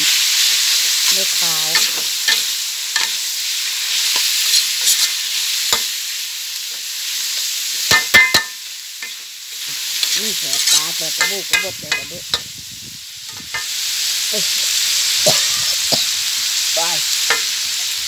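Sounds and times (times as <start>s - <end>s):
pork sizzling in a wok: 0.0s - 18.0s
metal spatula scraping a wok: 0.1s - 6.0s, 7.9s - 12.5s
spatula clanking on wok: 1.6s - 3.2s, 7.8s - 12.5s, 13.3s - 13.7s, 17.2s - 17.6s.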